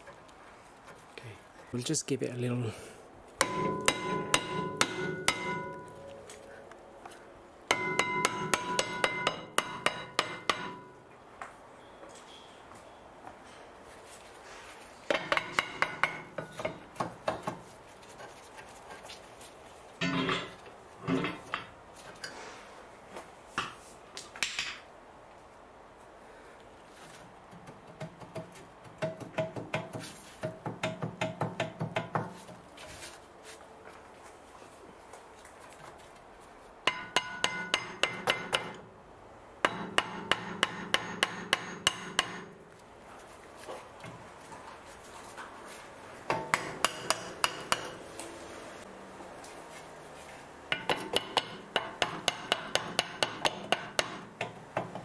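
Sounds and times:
metal disc ringing: 3.4 - 6.3, 7.7 - 11.0.

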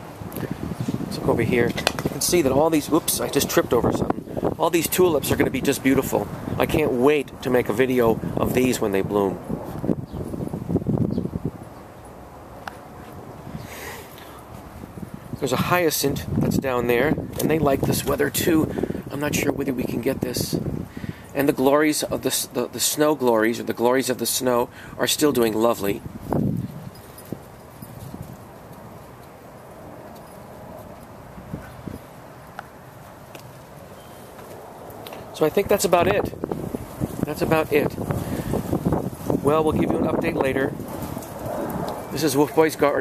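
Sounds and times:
faint outdoor background: 0.0 - 43.0.

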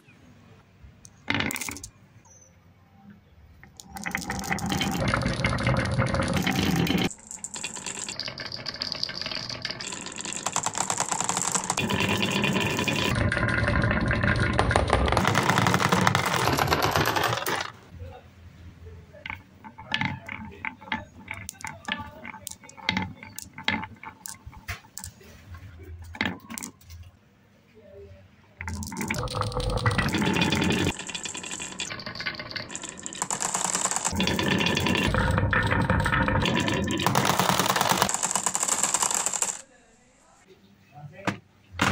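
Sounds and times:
marbles clicking together: 1.0 - 1.9, 3.6 - 17.7, 19.3 - 25.2, 28.6 - 39.6
glass marbles rolling on wood: 1.1 - 1.9, 3.6 - 17.8, 19.2 - 25.4, 26.0 - 27.1, 28.6 - 39.6.

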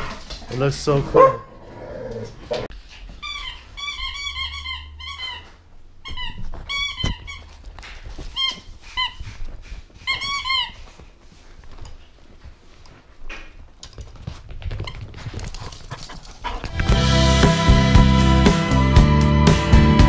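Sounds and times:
squeaky toy squeaking: 3.1 - 9.2, 10.0 - 10.9.

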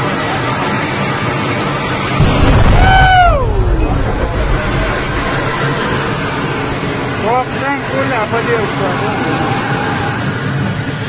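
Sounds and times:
deep rumble: 1.0 - 8.8
high wailing tone: 2.4 - 5.2.

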